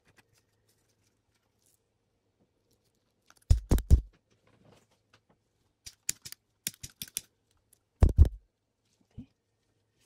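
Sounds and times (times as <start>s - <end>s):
small objects clicking on a table: 5.8s - 7.3s.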